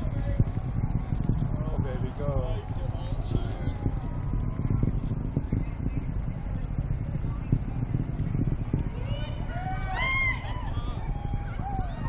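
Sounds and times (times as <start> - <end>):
distant rocket launch rumble: 0.0 - 12.0
faint crowd voices: 0.0 - 12.0.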